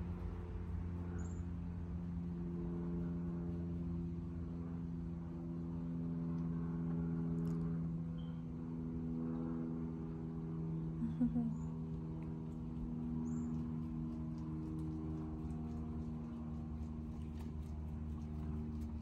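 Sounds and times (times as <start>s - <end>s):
steady machine hum: 0.0s - 19.0s.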